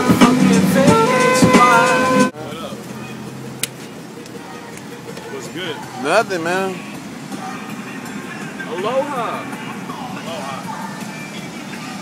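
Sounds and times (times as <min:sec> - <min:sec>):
music: 0:00.0 - 0:02.3, 0:03.8 - 0:12.0
van cabin noise: 0:00.0 - 0:12.0
faint voices: 0:02.3 - 0:12.0.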